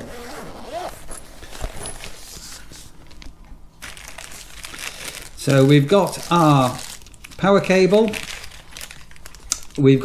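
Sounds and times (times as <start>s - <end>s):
fabric and plastic bag rustling: 0.0s - 9.8s.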